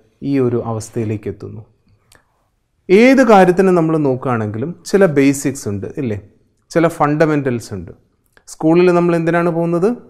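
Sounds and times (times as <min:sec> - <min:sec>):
man speaking: 0:00.0 - 0:01.7, 0:02.9 - 0:10.0.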